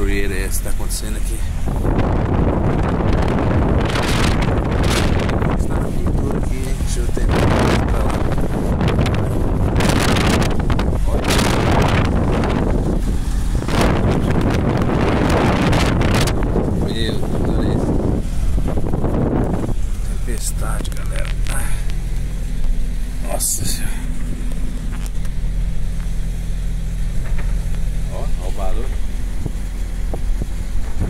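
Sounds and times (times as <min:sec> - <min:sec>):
storm wind gusting on microphone: 0:00.0 - 0:31.0.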